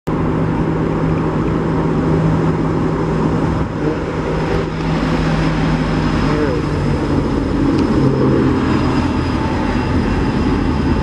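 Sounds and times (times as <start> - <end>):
engine drone: 0.1 - 11.0.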